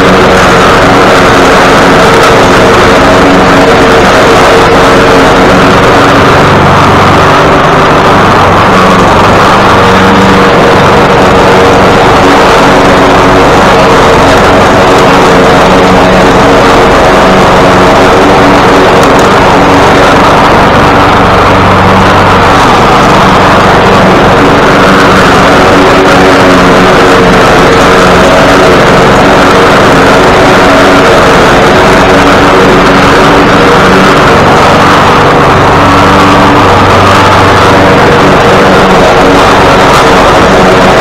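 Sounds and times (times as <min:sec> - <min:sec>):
lawn mower engine running: 0:00.0 - 0:41.0.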